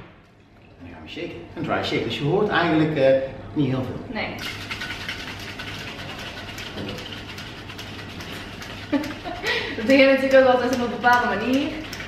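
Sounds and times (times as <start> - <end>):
cocktail shaker liquid sloshing: 4.4 - 12.0.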